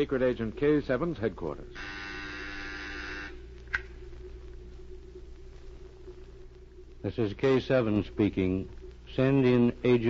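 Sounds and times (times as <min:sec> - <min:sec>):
low steady recording hum: 0:00.0 - 0:10.0
electric buzzer: 0:01.8 - 0:03.4.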